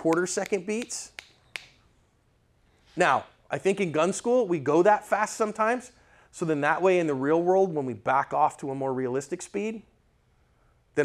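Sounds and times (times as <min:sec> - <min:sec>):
finger snaps: 0:00.0 - 0:01.8.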